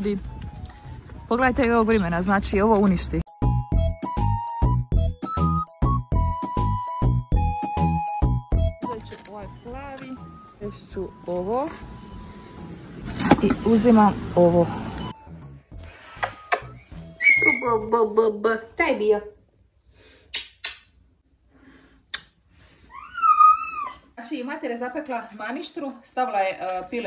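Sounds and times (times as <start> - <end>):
kiss smack: 20.3 - 20.9, 22.1 - 22.4
baby whining: 22.9 - 24.1.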